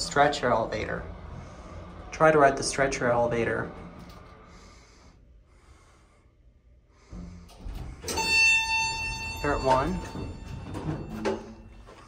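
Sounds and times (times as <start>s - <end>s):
elevator low rumble: 0.0s - 12.0s.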